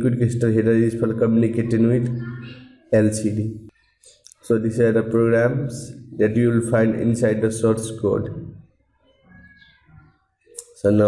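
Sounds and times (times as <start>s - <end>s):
man speaking: 0.0s - 2.2s, 2.9s - 3.7s, 4.3s - 8.7s, 10.6s - 11.0s.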